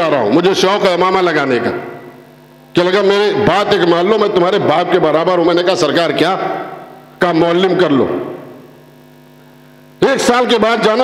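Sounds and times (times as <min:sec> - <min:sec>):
public-address system hum: 0:00.0 - 0:11.0.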